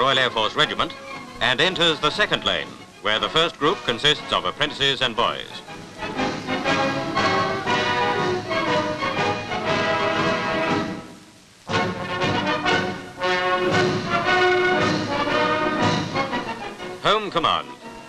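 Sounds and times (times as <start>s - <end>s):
brass band playing chords: 5.7s - 11.1s, 11.7s - 18.0s.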